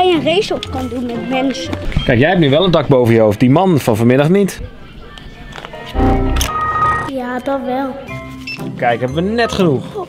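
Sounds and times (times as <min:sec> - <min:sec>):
low background music: 0:05.7 - 0:10.0
electronic error tones: 0:05.9 - 0:07.1
computer crash burst: 0:06.0 - 0:07.1.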